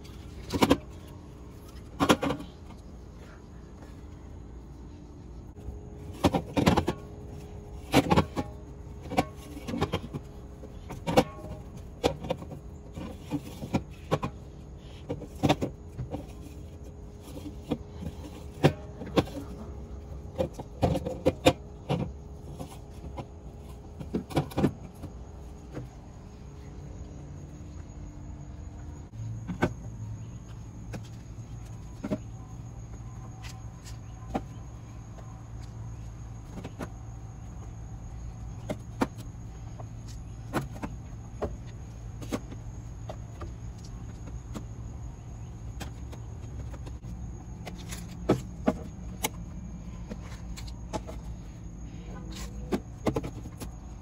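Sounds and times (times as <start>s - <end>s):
low steady hum: 0.0s - 54.0s.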